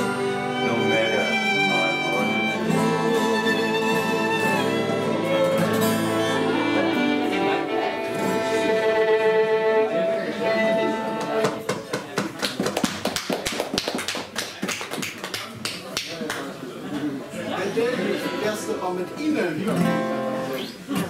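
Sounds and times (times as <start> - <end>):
fiddle and acoustic guitars: 0.0 - 11.7, 17.5 - 21.0
voices: 0.0 - 12.3, 15.4 - 21.0.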